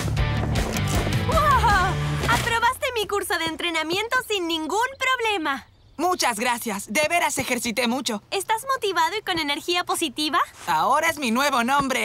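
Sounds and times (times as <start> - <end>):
upbeat cartoon music: 0.0 - 2.4.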